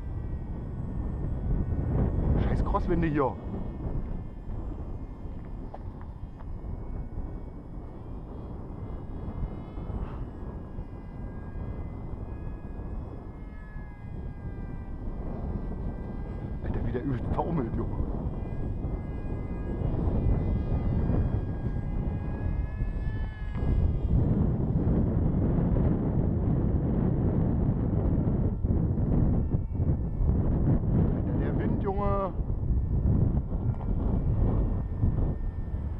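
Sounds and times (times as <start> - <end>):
electric motor and propeller whining: 0.0 - 35.9
wind rumbling on microphone: 0.0 - 35.9.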